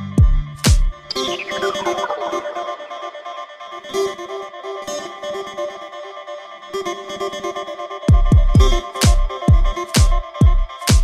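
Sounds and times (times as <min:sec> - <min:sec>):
repeating synth melody: 0:01.1 - 0:03.4.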